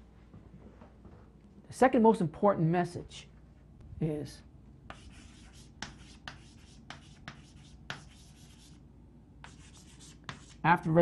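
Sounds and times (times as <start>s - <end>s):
chalk scratching on a blackboard: 4.9s - 8.8s, 9.4s - 10.6s
chalk tapping on board: 4.9s - 8.8s, 9.4s - 10.6s.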